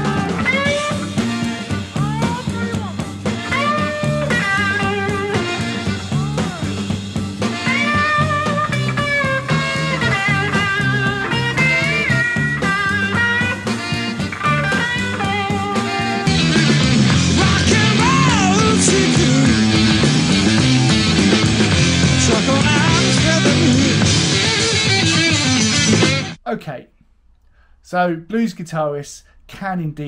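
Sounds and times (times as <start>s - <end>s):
bass line: 0.0s - 26.4s
electric guitar bending notes: 0.0s - 26.4s
drums: 0.0s - 26.5s.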